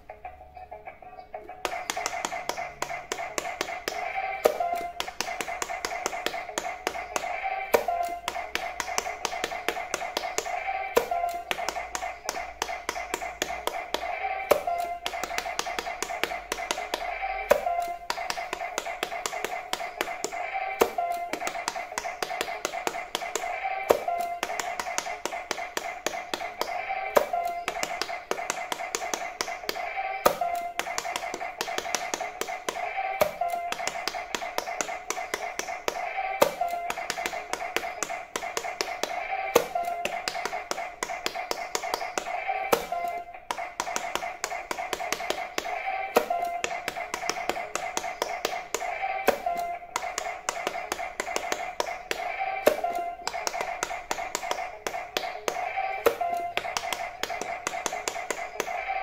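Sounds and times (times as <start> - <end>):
looping electronic tune: 1.2 - 59.0
fingers tapping silicone buttons: 1.5 - 58.8.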